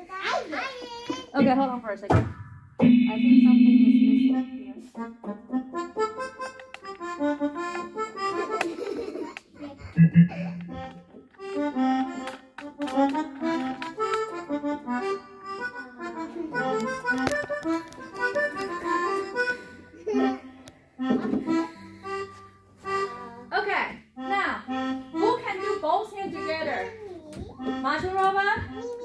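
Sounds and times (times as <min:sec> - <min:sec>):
digital keyboards playing held notes: 0:02.8 - 0:09.2, 0:09.9 - 0:23.5, 0:24.2 - 0:26.9, 0:27.6 - 0:29.0.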